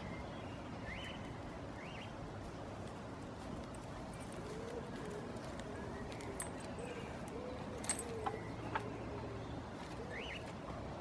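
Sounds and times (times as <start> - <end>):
distant bird cooing: 4.1 - 11.0.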